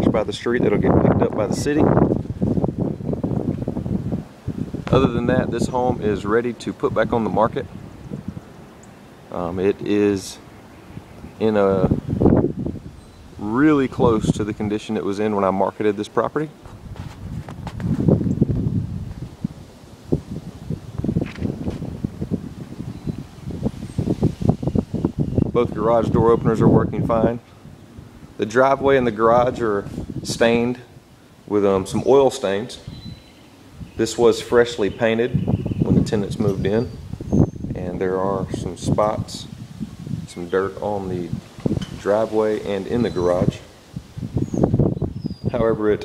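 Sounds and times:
wind gusting on microphone: 0.0 - 46.0.

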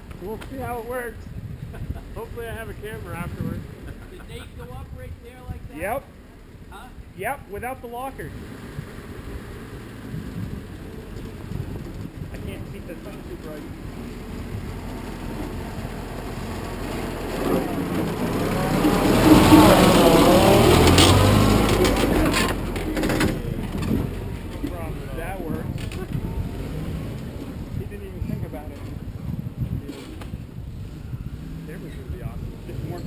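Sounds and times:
engine revving: 8.2 - 33.0.

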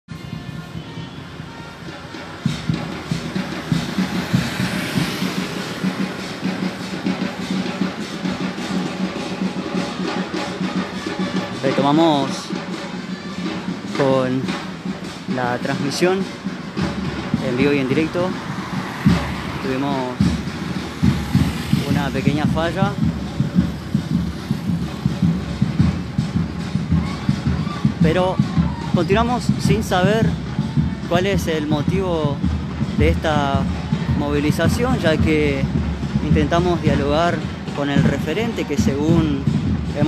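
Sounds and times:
drums beaten in steady rhythm: 0.1 - 40.0
traffic rumble: 0.1 - 40.0
motorcycle passing: 2.1 - 11.6, 16.5 - 28.0
man's voice: 11.4 - 12.6, 13.9 - 14.6, 15.2 - 16.4, 17.3 - 18.5, 19.5 - 20.4, 21.6 - 23.2, 28.0 - 40.0.

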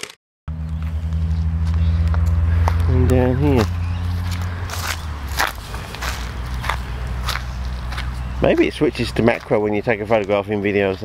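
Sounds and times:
steady low hum: 0.5 - 9.0
footsteps crunching dry leaves: 0.5 - 11.0.

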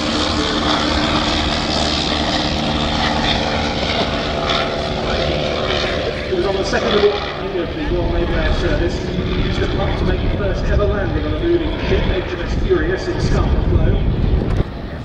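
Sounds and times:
rotary aircraft engine: 0.0 - 15.0
commentary speech: 4.9 - 14.1.

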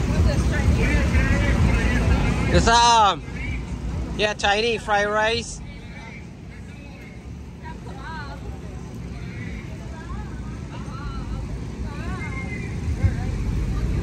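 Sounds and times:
distant voices talking: 0.0 - 14.0
steady low rumble: 0.0 - 14.0.

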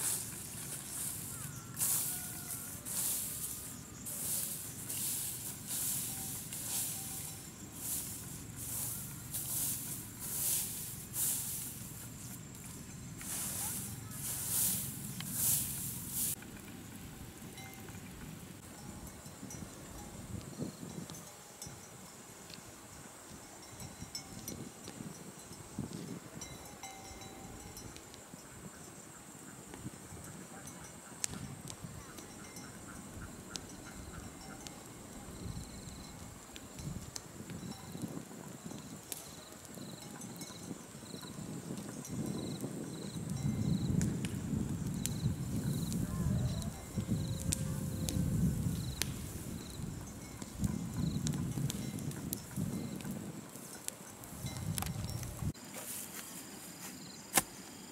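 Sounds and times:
swish of straw flung by rake: 0.0 - 12.3, 13.2 - 16.4, 55.6 - 57.5
low crackling rustle: 0.0 - 26.3, 31.2 - 57.5
faint outdoor background: 0.0 - 57.9
insects chirping in trills: 0.0 - 57.9.

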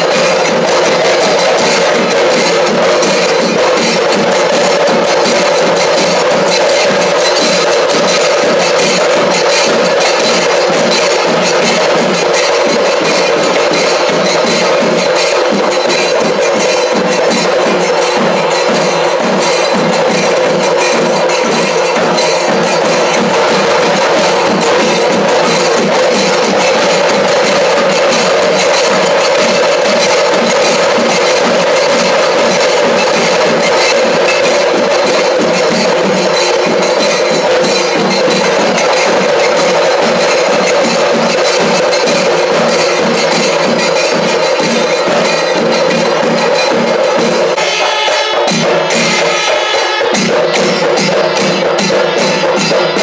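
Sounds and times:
drums: 0.0 - 53.0
metal hand cymbals: 0.0 - 53.0.

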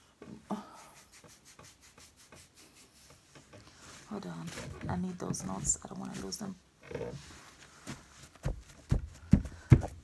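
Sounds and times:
fingertips rubbing scalp: 0.7 - 4.5.

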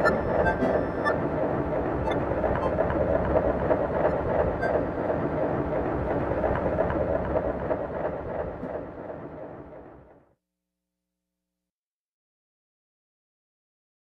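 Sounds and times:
noisy electronic synthesizer drone: 0.0 - 9.8.

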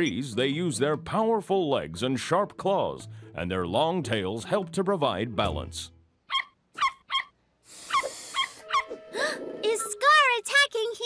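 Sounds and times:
cartoon dog yipping: 6.3 - 9.0.

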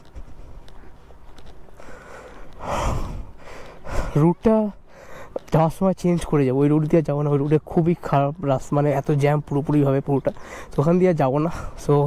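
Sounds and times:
man exhaling breathily: 1.8 - 4.2
air rumble on microphone: 1.9 - 4.3.

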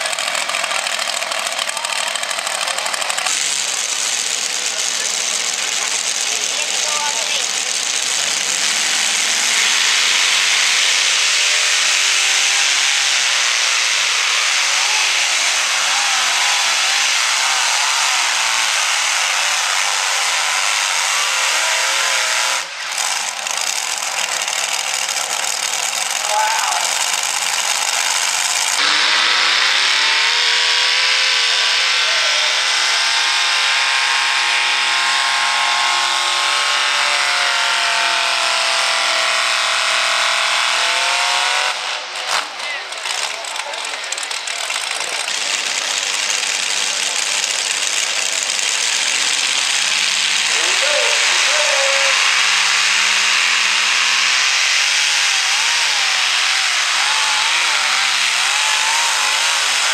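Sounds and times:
second tractor revving up: 0.0 - 59.9
tractor engine roar: 0.0 - 59.9.

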